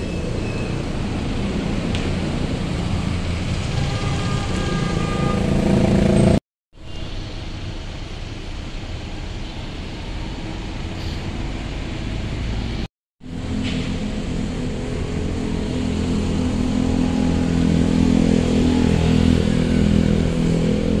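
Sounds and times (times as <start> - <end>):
rumble of traffic: 0.0 - 21.0
truck engine passing: 10.2 - 21.0.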